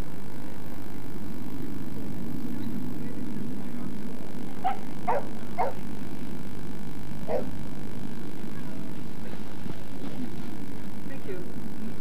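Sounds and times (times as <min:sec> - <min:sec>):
low background hum: 0:00.0 - 0:12.0
dog barking: 0:04.6 - 0:05.9, 0:07.3 - 0:07.6.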